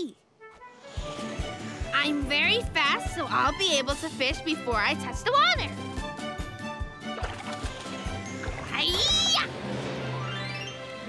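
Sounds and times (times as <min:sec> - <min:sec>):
cartoon music with steady beat: 0:00.4 - 0:09.3.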